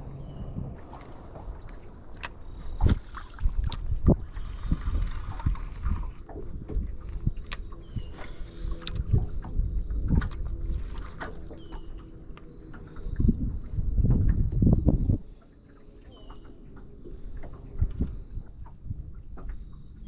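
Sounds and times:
water lapping against boat hull: 0.0 - 20.0
wind rumble on microphone: 0.0 - 20.0
fishing reel clicks: 3.6 - 6.1, 8.7 - 9.1.

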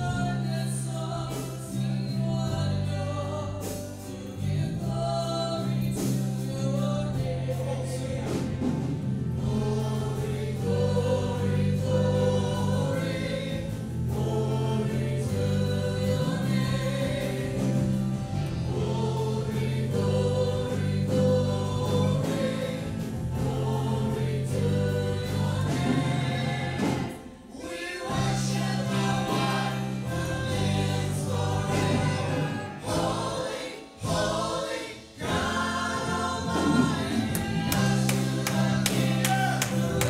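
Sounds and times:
worship band playing and singing: 0.0 - 40.0.

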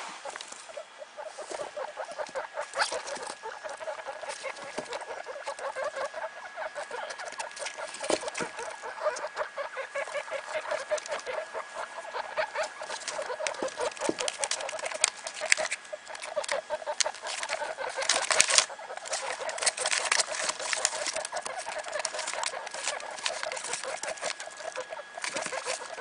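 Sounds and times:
guinea pigs clucking: 0.2 - 26.0
rustling of newspaper bedding: 12.6 - 26.0.

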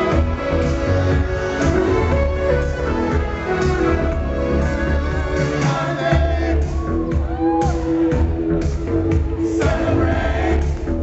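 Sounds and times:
live band playing pop song: 0.0 - 10.9
steady bass line: 0.0 - 11.0.

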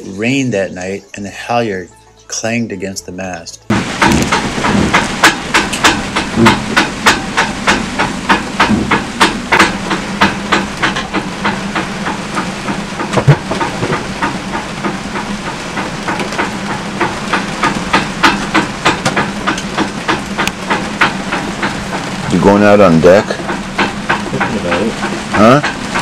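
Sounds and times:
halyard clanging against mast: 3.7 - 26.0
rain hiss: 3.7 - 26.0.

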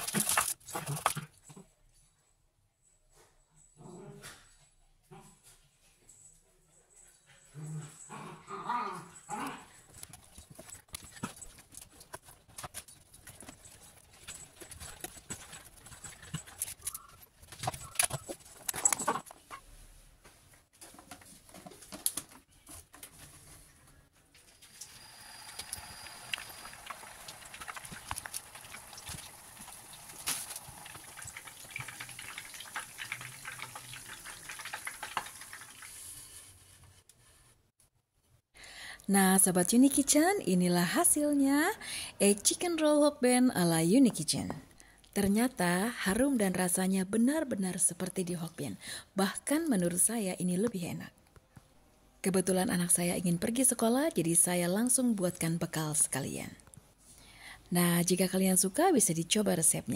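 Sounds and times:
oil crackling and popping: 0.0 - 1.2, 24.7 - 36.3
food frying in sizzling oil: 24.7 - 36.5.

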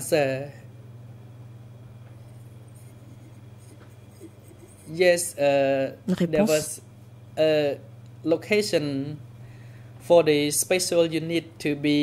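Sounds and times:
low electrical hum: 0.0 - 12.0
person speaking: 4.2 - 6.8.

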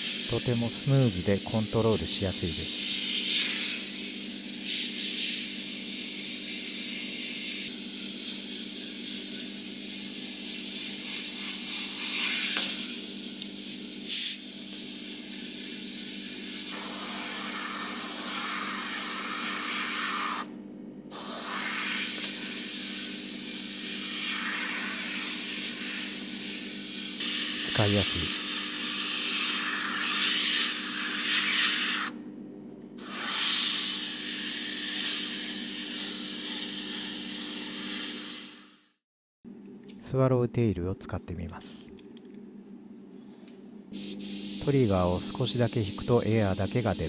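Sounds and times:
airbrush hissing: 0.0 - 20.5, 21.1 - 32.2, 33.0 - 39.0, 44.0 - 47.0.

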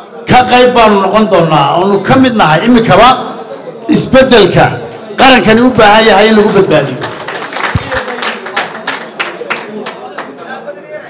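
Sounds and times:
people clapping: 5.7 - 10.7.

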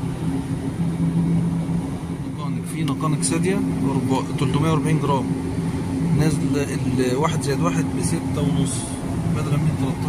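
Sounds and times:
low steady tones: 0.0 - 10.0
refrigeration unit hum: 0.0 - 10.0.

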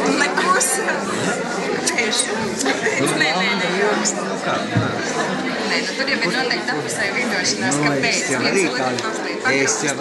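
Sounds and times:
group of people chattering: 0.0 - 10.0.

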